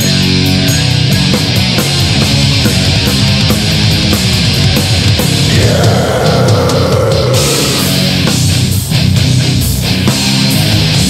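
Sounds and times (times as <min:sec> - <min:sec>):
loud extreme metal: 0:00.0 - 0:11.0.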